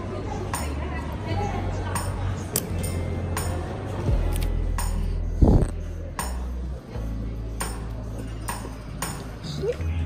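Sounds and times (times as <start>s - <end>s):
background music with regular beat: 1.7s - 10.0s
stepping bass line: 4.1s - 5.9s.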